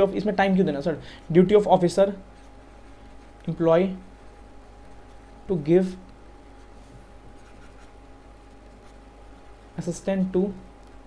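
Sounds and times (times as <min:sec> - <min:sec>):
stylus scratching on tablet: 0:06.5 - 0:09.7.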